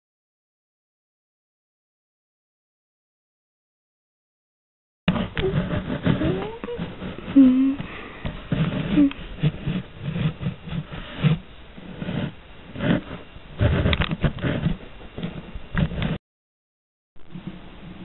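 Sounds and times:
person making wordless sounds: 5.2 - 8.1
knocks and rustles: 12.0 - 16.2.

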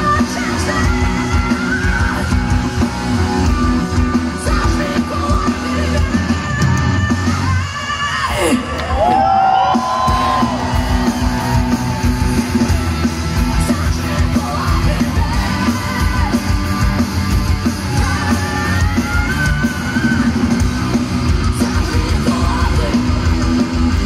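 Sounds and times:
heavy rock band playing live: 0.0 - 24.0.

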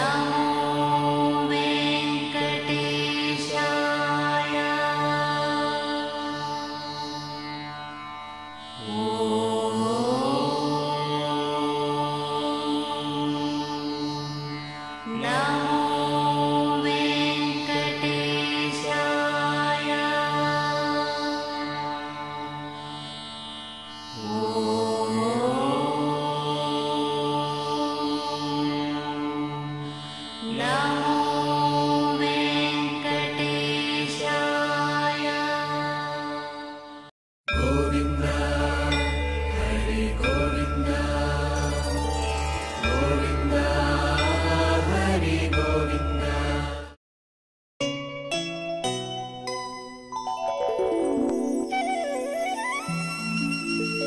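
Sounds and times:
mantra-like chanting: 0.0 - 7.4, 8.8 - 22.6, 24.1 - 47.0
sustained drone: 37.6 - 46.8.

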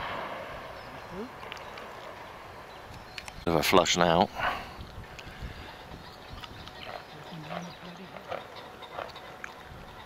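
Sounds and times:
shotgun shot echo: 0.0 - 0.9.

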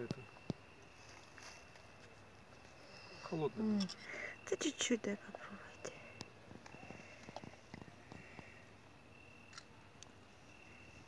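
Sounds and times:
thin steady high tone: 0.0 - 9.6, 10.2 - 11.0.

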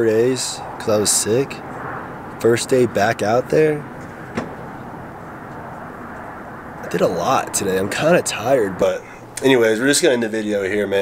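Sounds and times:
car cabin hum: 3.8 - 6.8.

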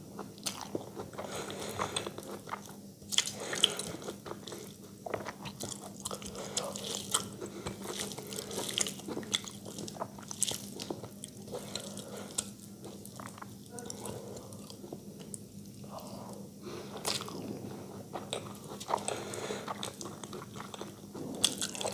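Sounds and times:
faint steady hum: 0.0 - 21.9
wet chewing: 0.2 - 21.9.

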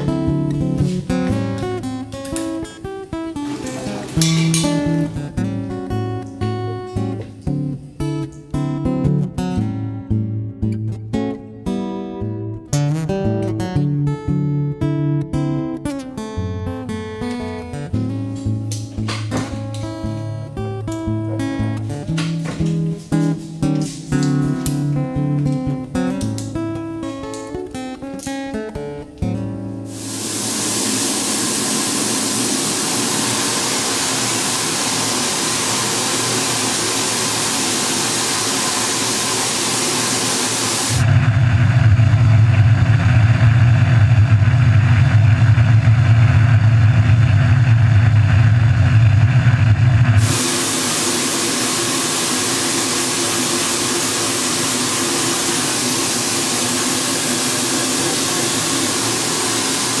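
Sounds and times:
spray nozzle hissing: 29.9 - 41.0, 50.2 - 60.0.

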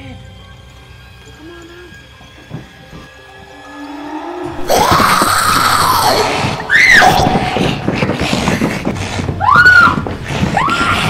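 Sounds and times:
sparse horror film music: 0.0 - 11.0
high-pitched shriek: 3.6 - 7.9
loud harsh scream: 3.7 - 7.8.

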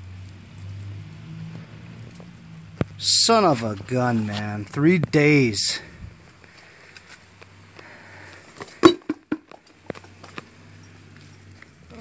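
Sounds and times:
metal wheel knocking on concrete: 8.8 - 9.6.

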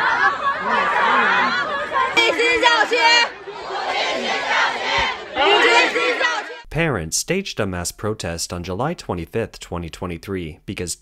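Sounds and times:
crowd shouting a slogan: 0.0 - 6.7.

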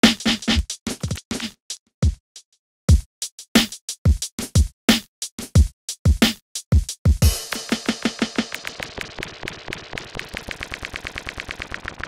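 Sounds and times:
stuttering drum-machine hits: 7.1 - 12.0.

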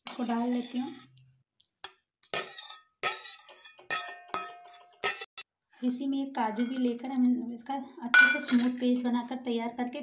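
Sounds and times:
metal spoon clinking on steel jar: 1.8 - 5.4, 8.2 - 8.8.

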